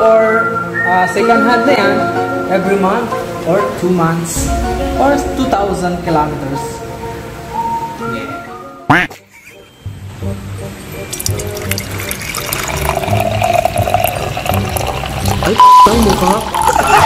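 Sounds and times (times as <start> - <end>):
background music with steady beat: 0.0 - 12.7
loud whoosh: 4.4 - 8.0
oil pouring through funnel: 10.9 - 17.0.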